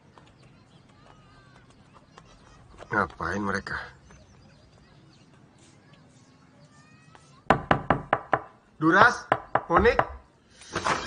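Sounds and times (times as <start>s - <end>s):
knocks on a wooden door: 7.5s - 10.2s.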